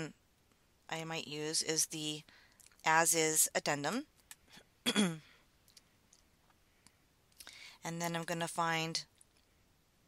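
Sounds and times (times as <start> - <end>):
woman clearing her throat: 4.8 - 5.3.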